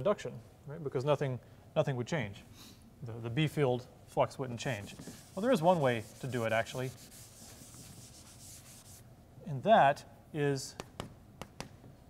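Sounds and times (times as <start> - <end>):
blackboard being wiped: 4.6 - 9.1.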